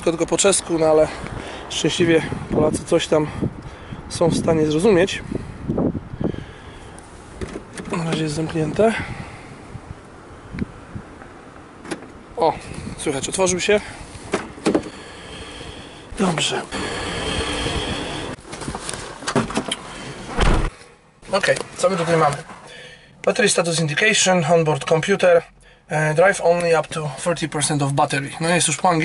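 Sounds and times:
low outdoor background noise: 0:00.0 - 0:29.0.

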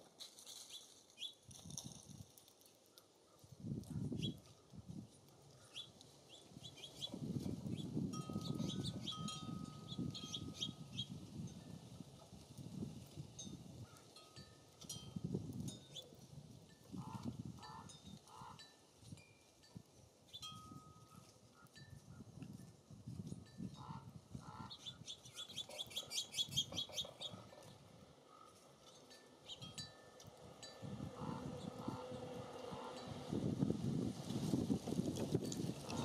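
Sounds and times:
wind gusting on microphone: 0:03.5 - 0:05.2, 0:06.5 - 0:14.0, 0:14.9 - 0:18.3, 0:21.9 - 0:28.0, 0:29.6 - 0:36.0
small birds calling: 0:05.5 - 0:11.2, 0:23.8 - 0:27.6
rapid high bird chattering: 0:24.5 - 0:27.4.

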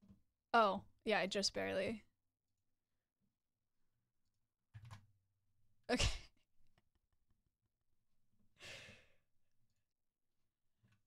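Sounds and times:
woman's breathy exhale: 0:08.6 - 0:09.1.

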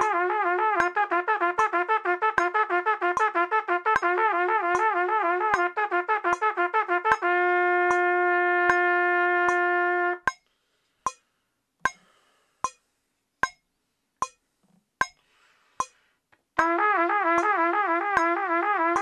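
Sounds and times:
trumpet playing: 0:00.0 - 0:10.3, 0:16.6 - 0:19.0
metronome clicking: 0:00.8 - 0:10.5, 0:11.1 - 0:12.8, 0:14.2 - 0:14.4, 0:16.6 - 0:19.0.

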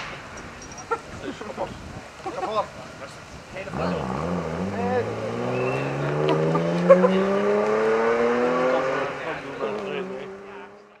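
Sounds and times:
sharp crack: 0:00.0 - 0:00.6
rally car engine accelerating: 0:03.7 - 0:11.0.

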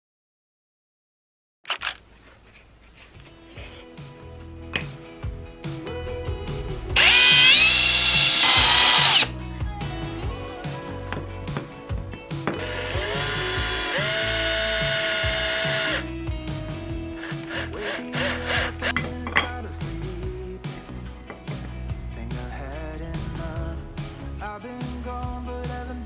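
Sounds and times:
background music: 0:03.2 - 0:26.0
cordless drill running: 0:07.0 - 0:09.3, 0:12.6 - 0:16.1, 0:17.2 - 0:19.0.

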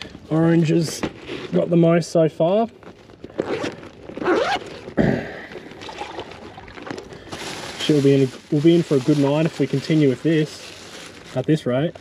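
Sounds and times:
rustling and scraping in bag: 0:00.0 - 0:12.0
bag zip: 0:03.3 - 0:08.2.

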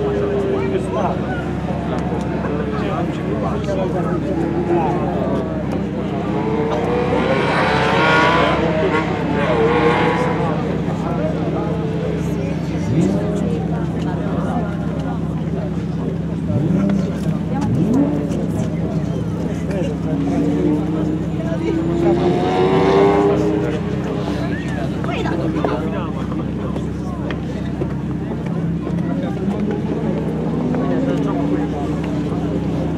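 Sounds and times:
car engine accelerating past: 0:04.4 - 0:14.0, 0:16.3 - 0:25.1.

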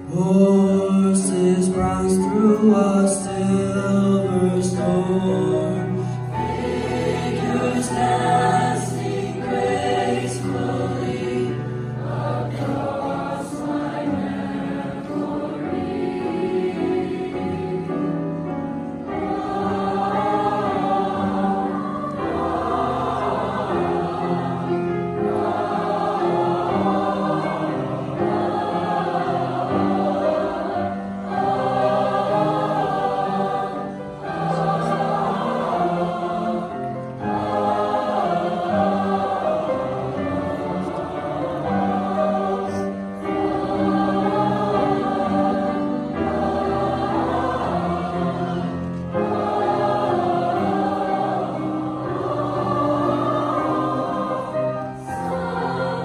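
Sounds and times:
choir singing: 0:00.0 - 0:56.0
grand piano accompaniment: 0:00.0 - 0:56.0.

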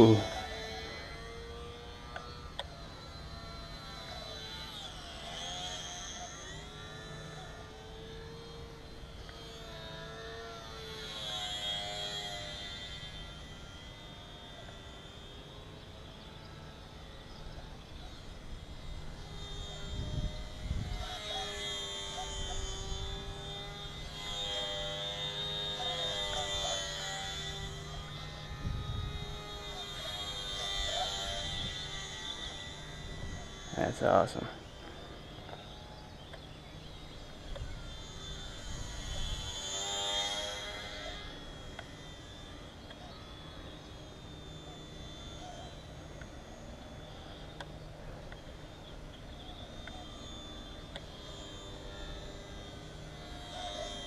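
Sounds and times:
rc plane motor whining: 0:00.0 - 0:54.0
wind buffeting microphone: 0:19.7 - 0:21.1.

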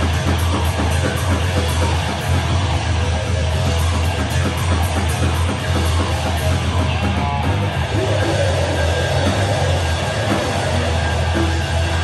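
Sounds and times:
drum kit: 0:00.0 - 0:12.0
electric guitar: 0:00.0 - 0:12.0.

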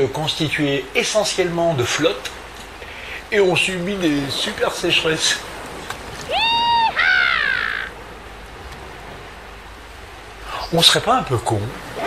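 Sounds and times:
high-pitched animal-like calls: 0:06.3 - 0:08.0.

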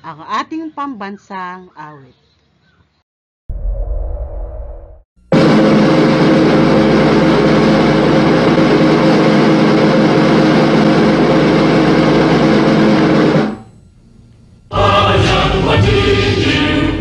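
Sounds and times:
loud steady roar: 0:05.2 - 0:13.8, 0:14.7 - 0:17.0
low drone of held tones: 0:05.2 - 0:17.0.

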